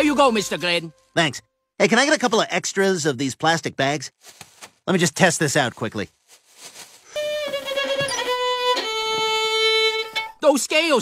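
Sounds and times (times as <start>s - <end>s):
violin playing descending scale: 0.0s - 1.0s, 7.2s - 10.4s.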